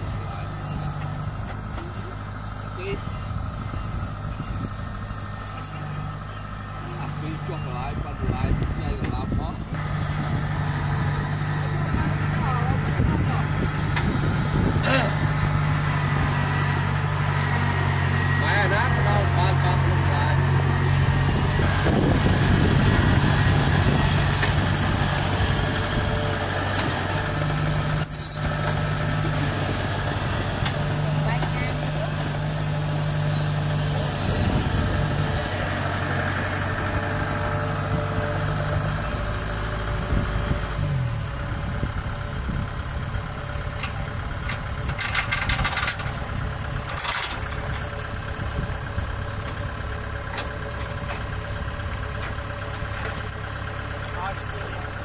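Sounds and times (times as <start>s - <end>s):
combine harvester diesel engine: 0.0s - 55.0s
rattling clicks: 42.9s - 48.6s, 49.4s - 51.5s, 52.2s - 53.5s.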